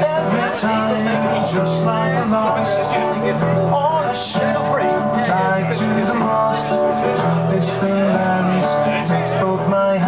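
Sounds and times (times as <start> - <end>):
acoustic guitar strumming: 0.0 - 10.0
man singing into microphone: 0.0 - 10.0.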